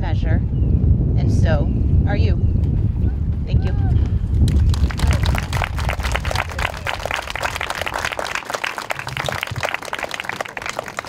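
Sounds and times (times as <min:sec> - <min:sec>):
audience applauding: 0:04.4 - 0:11.0.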